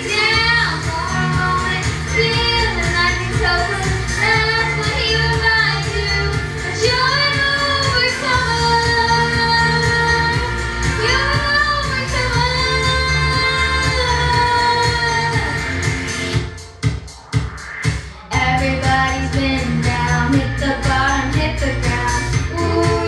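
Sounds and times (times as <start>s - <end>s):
girl singing pop ballad: 0.0s - 15.9s, 18.3s - 23.0s
backing music with steady beat: 0.0s - 23.0s.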